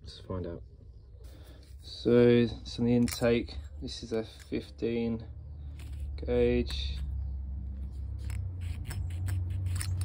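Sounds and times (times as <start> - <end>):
metallic ticks and scrapes: 8.0 - 10.0.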